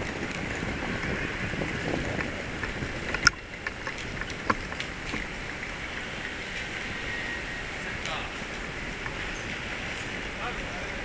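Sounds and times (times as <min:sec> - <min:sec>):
city street noise: 0:00.0 - 0:11.0.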